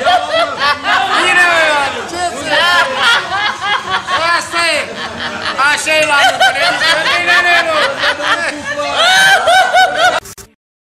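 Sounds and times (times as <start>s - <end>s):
high-pitched laughter: 2.6s - 10.3s.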